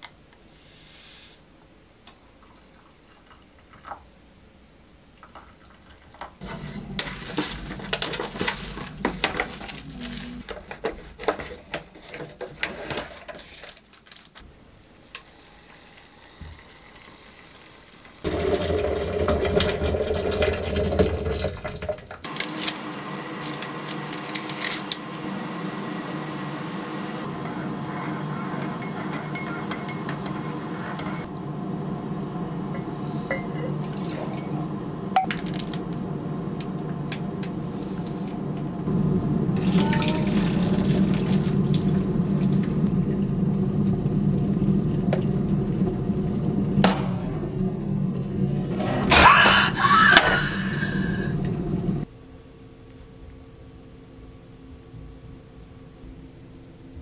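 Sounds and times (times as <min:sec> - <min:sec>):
water running into plastic pitcher: 0:15.2 - 0:22.2, 0:39.6 - 0:42.8
hot water poured into mug: 0:15.3 - 0:22.0, 0:39.6 - 0:42.8.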